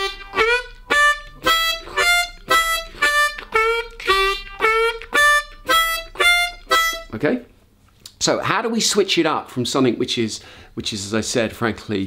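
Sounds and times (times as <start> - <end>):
harmonica playing blues riff: 0.0 - 7.4.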